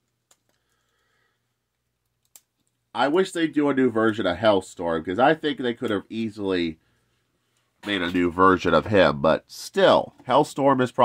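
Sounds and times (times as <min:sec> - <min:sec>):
man's voice: 0:07.8 - 0:11.0.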